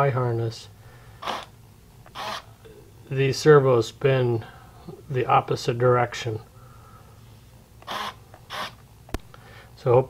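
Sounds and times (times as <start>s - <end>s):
small servos whirring: 1.2s - 2.4s, 7.8s - 8.8s.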